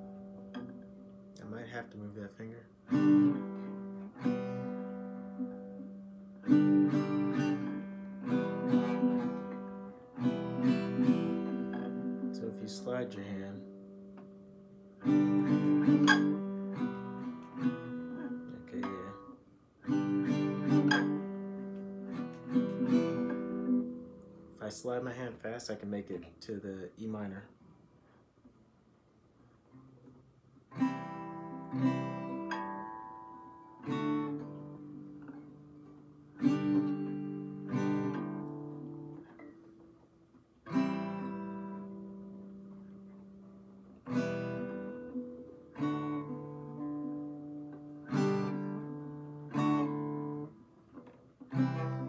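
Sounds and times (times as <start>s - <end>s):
acoustic guitar chords strummed: 0.0s - 27.4s, 29.7s - 52.0s.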